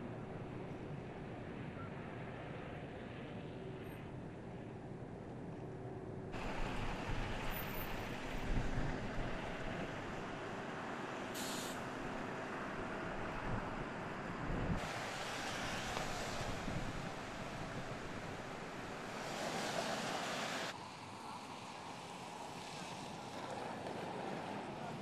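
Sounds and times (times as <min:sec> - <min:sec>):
wind: 0:00.0 - 0:25.0
traffic rushing: 0:06.3 - 0:25.0.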